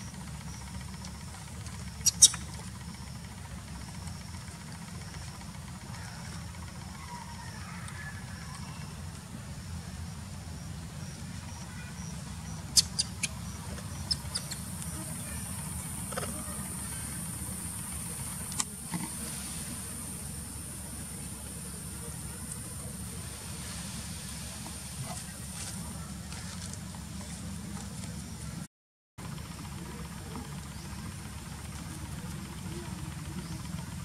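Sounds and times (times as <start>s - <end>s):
faint high chirping: 1.8s - 3.2s, 10.6s - 17.6s.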